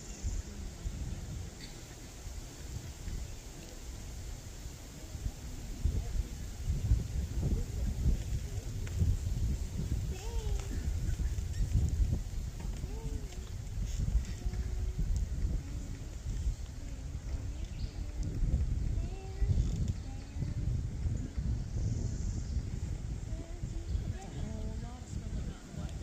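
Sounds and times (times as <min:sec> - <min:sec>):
faint voices talking: 0:00.0 - 0:26.0
wind buffeting microphone: 0:00.0 - 0:26.0.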